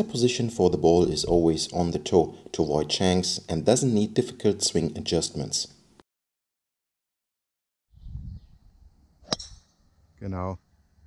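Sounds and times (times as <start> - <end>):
golf club striking ball: 9.2 - 9.8.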